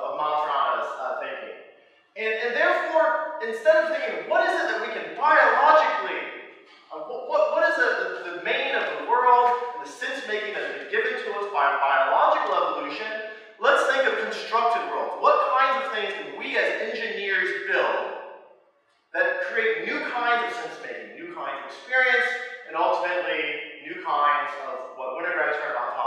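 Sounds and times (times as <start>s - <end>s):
man lecturing: 0.0s - 1.5s, 2.2s - 6.2s, 6.8s - 18.0s, 19.2s - 26.0s.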